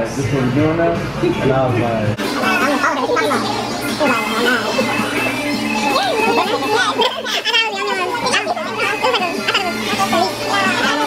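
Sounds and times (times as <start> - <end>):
young people chattering: 2.2 - 11.0.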